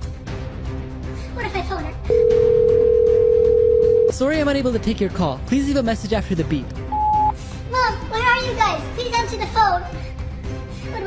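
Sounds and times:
telephone ringback tone: 2.1s - 4.1s.

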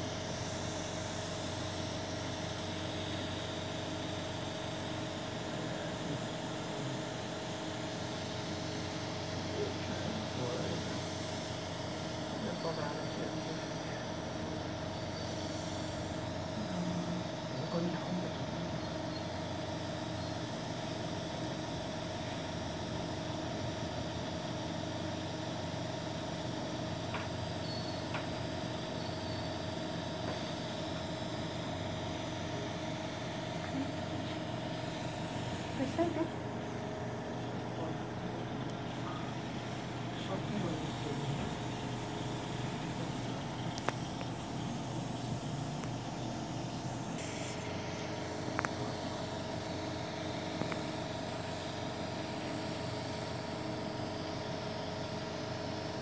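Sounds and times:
equipment humming: 0.0s - 56.0s.

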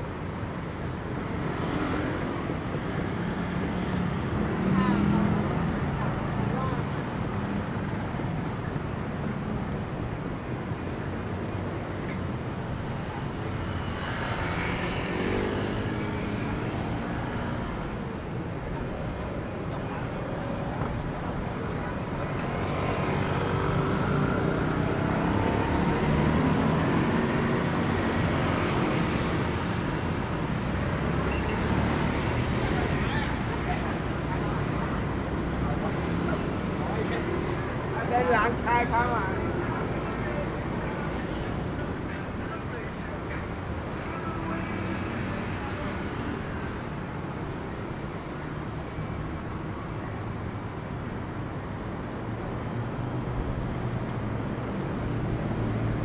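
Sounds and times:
cars and motorbikes passing: 0.0s - 56.0s
passers-by talking: 1.2s - 10.2s, 10.8s - 48.8s.

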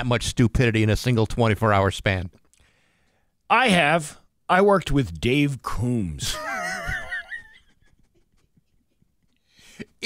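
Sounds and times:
high-pitched wavering laugh: 6.4s - 9.0s.

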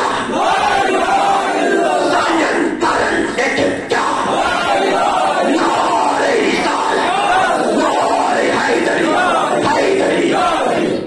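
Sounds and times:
crowd voices: 0.0s - 11.0s
man chanting into a microphone: 5.5s - 11.0s.

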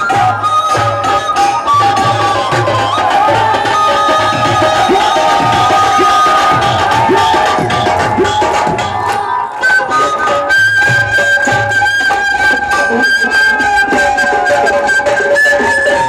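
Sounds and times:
drum beat: 0.0s - 9.6s
bamboo flute folk melody: 0.0s - 16.0s.

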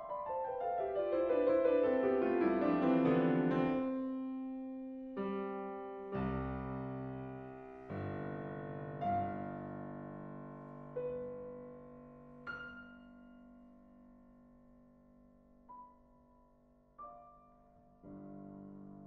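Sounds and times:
solo piano: 0.0s - 19.0s.

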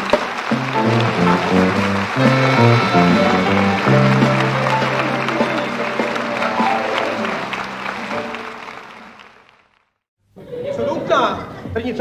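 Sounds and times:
instrumental music: 0.0s - 9.3s
audience applause: 0.0s - 9.9s.

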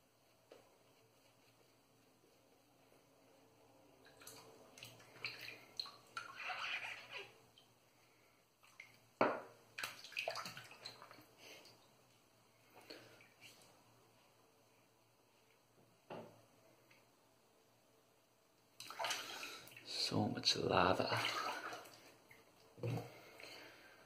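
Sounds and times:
water splashing in sink: 4.0s - 7.7s, 8.6s - 11.8s, 18.8s - 20.1s, 21.0s - 23.2s.

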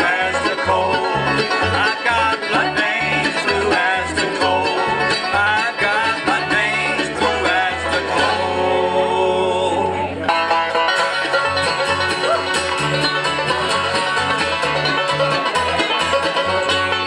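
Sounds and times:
banjo: 0.0s - 17.0s
fiddle with sliding notes: 0.0s - 17.0s
guitar: 0.0s - 17.0s
mandolin: 0.0s - 17.0s
upright bass notes: 0.0s - 17.0s.

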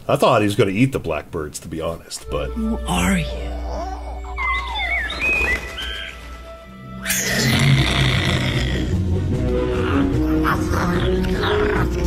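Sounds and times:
background music: 2.1s - 12.0s
high gliding chirps: 4.1s - 7.4s.

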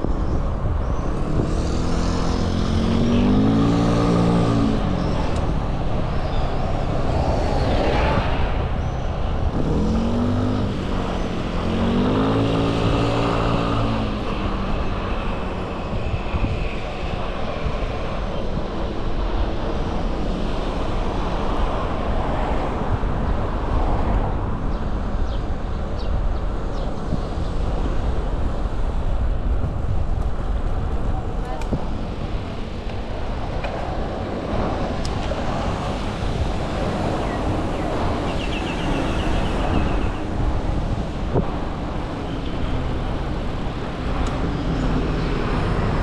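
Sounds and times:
street traffic: 0.0s - 46.0s
vehicle engines passing: 0.0s - 46.0s
wind rumble on microphone: 0.0s - 46.0s.

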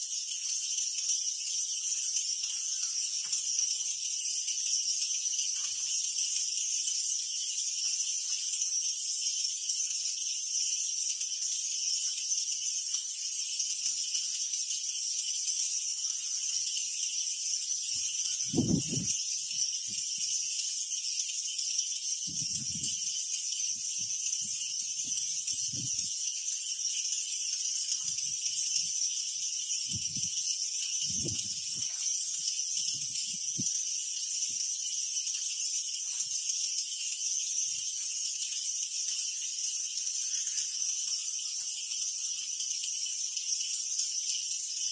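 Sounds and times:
insect chorus buzzing: 0.0s - 44.9s.

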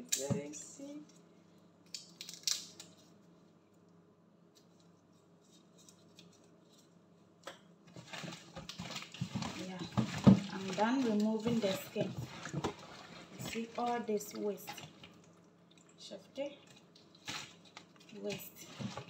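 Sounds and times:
person speaking: 0.0s - 1.0s, 9.5s - 12.3s
peeling shrimp shells: 1.8s - 3.2s
rustling and crinkling: 4.5s - 7.3s, 7.9s - 15.8s, 16.6s - 19.0s.

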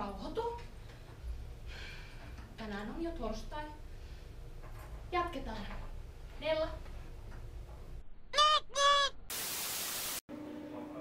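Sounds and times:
faint steady hum: 0.0s - 8.1s
tv static hiss: 9.3s - 10.2s.

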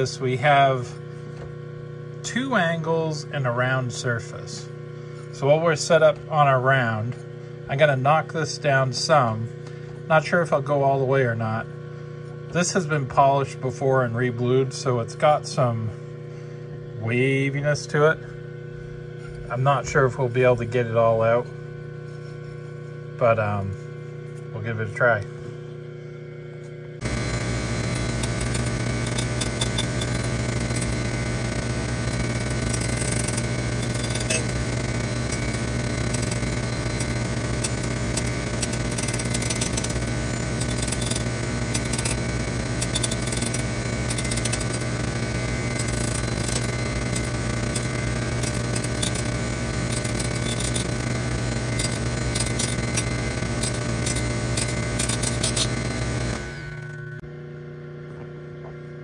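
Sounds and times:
grinder motor hum: 0.0s - 59.0s
grinding wheel on steel: 27.0s - 57.2s.

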